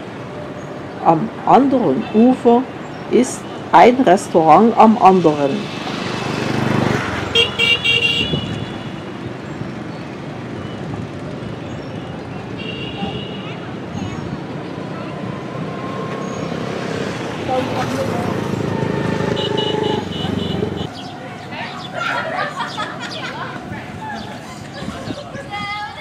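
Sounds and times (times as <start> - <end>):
street traffic: 0.0 - 26.0
motorbike horns beeping: 7.2 - 9.1, 12.0 - 13.6, 18.4 - 21.0.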